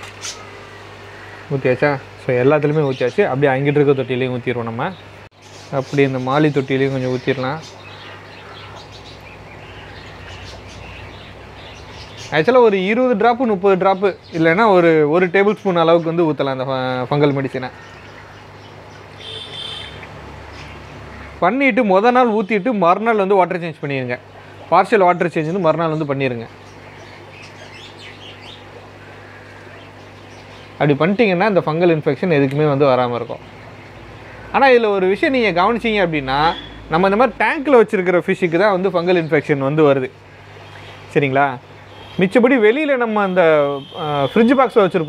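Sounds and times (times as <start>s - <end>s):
birds twittering: 0.0s - 45.0s
steady low hum: 0.0s - 45.0s.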